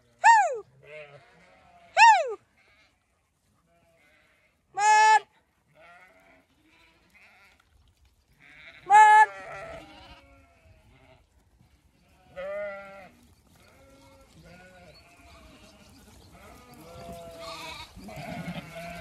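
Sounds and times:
sheep bleating: 0.7s - 3.0s, 3.6s - 7.6s, 8.4s - 11.3s, 11.9s - 19.0s.

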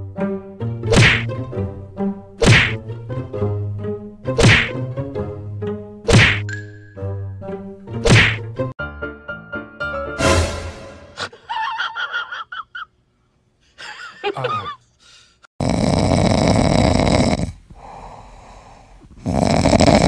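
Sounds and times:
cat paw slapping hand: 0.9s - 1.3s, 2.4s - 2.8s, 4.4s - 4.8s, 6.1s - 6.4s, 8.0s - 8.4s.

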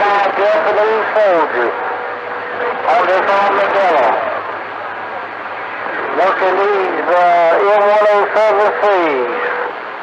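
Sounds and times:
faint low hum: 0.0s - 10.0s
radio static hiss: 0.0s - 10.0s.

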